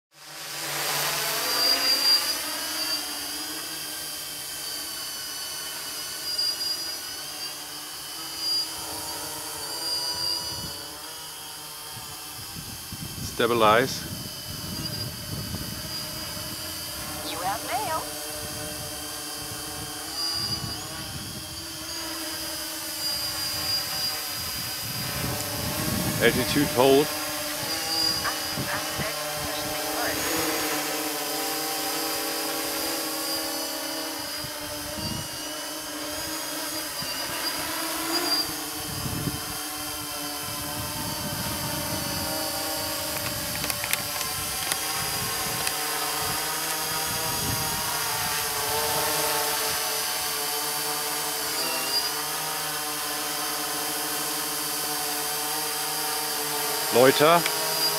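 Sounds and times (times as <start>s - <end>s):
quadcopter motors buzzing: 0.2s - 57.9s
wind rumble on microphone: 11.9s - 17.3s, 18.3s - 21.6s, 23.5s - 30.2s, 38.8s - 49.1s.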